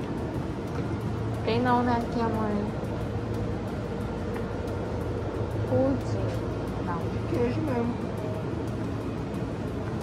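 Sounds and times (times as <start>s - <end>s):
refrigerator hum and hiss: 0.0s - 10.0s.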